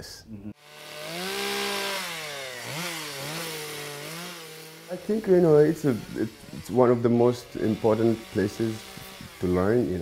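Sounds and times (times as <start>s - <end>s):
chainsaw carving wood: 0.6s - 10.0s.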